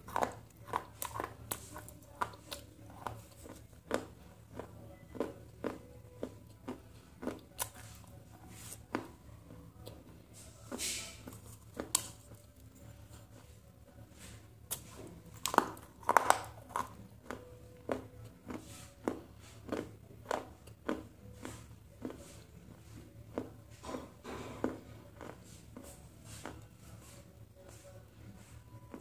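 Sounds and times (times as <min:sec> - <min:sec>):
crunchy chewing of fried snack: 0:00.0 - 0:29.0.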